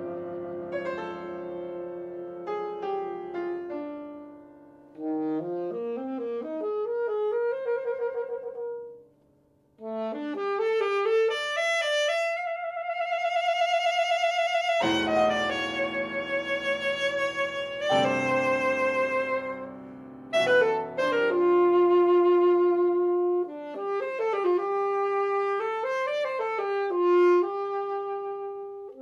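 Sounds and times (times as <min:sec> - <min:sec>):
saxophone: 0:00.0 - 0:09.2, 0:09.8 - 0:29.0
grand piano: 0:00.0 - 0:29.0.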